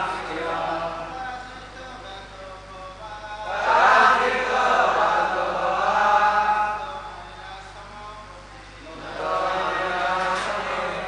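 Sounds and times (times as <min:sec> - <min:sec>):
congregation chanting in unison: 0:00.0 - 0:02.2, 0:03.2 - 0:07.3, 0:08.8 - 0:11.0.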